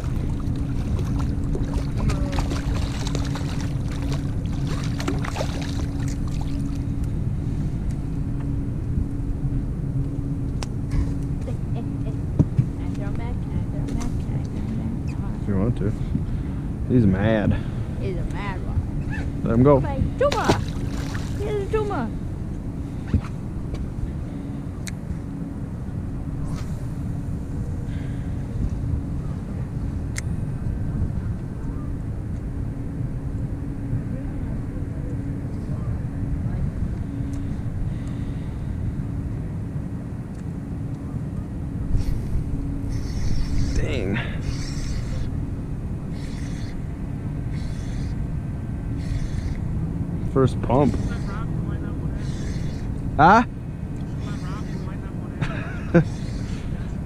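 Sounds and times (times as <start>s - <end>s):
outboard motor running: 0.0s - 57.0s.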